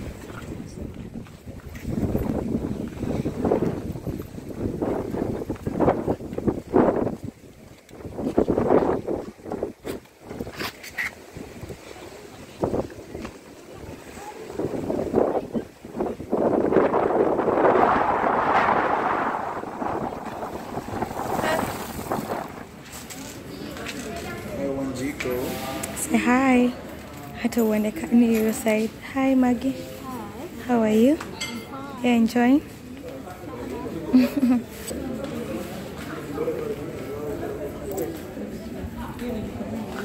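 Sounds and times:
wind buffeting microphone: 0:00.0 - 0:24.4
sea waves: 0:10.1 - 0:27.2.

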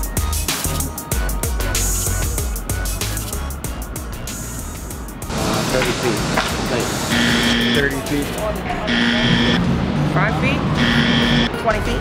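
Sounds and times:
held electronic note: 0:06.9 - 0:09.6, 0:10.8 - 0:11.6.

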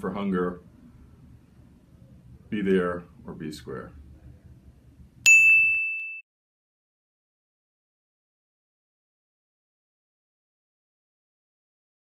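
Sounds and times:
bright bell ding: 0:05.2 - 0:06.2.

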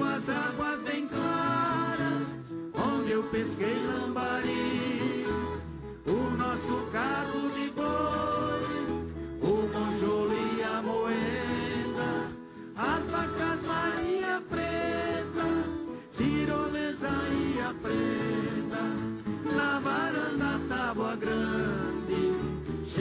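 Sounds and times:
plucked folk guitars playing: 0:00.0 - 0:23.0
voices singing: 0:00.0 - 0:23.0.

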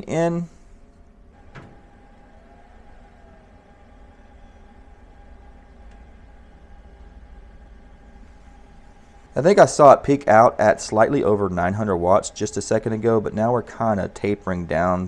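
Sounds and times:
cooling fan whine: 0:00.0 - 0:15.0
faint steady whir: 0:00.0 - 0:15.0
click: 0:05.8 - 0:06.1.

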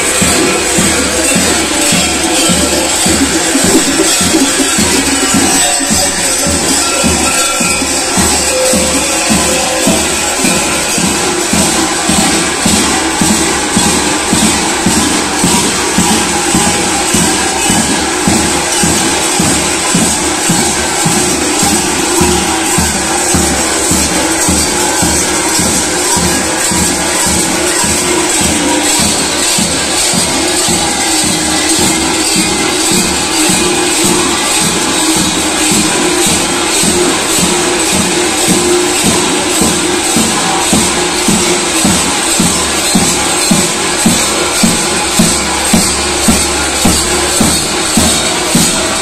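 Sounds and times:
belt bells clanging and jangling: 0:00.0 - 0:49.0
large drums beating: 0:00.0 - 0:49.0.

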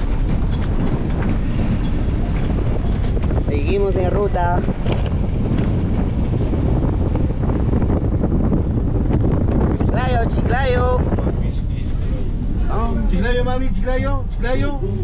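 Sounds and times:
van road and engine noise: 0:00.0 - 0:15.0
wind buffeting microphone: 0:00.0 - 0:15.0.

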